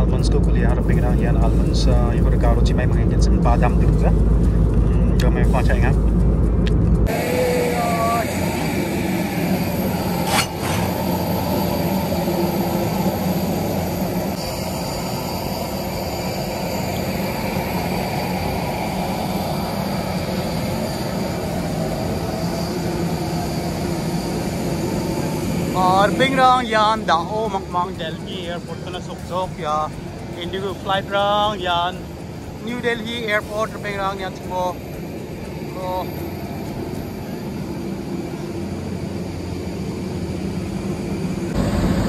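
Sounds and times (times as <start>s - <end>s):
aircraft and ground machinery din: 0.0s - 42.0s
airliner cabin drone: 0.0s - 42.0s.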